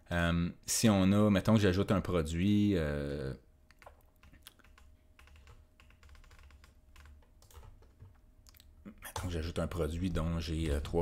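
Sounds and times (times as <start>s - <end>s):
faint steady hum: 0.0s - 11.0s
computer keyboard and mouse clicking: 3.7s - 8.7s.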